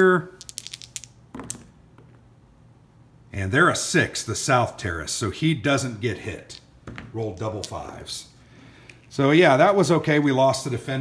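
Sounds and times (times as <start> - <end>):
dice clattering in a tray: 0.4 - 1.7
dice faint tap: 0.4 - 2.2.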